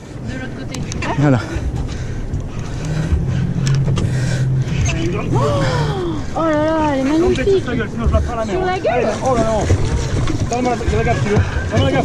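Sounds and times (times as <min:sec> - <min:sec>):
boat engine humming: 0:00.0 - 0:12.0
water noise: 0:00.0 - 0:12.0
wind: 0:00.0 - 0:12.0.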